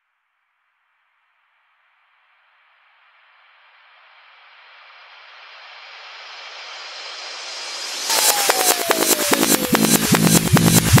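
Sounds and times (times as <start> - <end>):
reversed synthesizer noise sweep: 8.1 - 11.0.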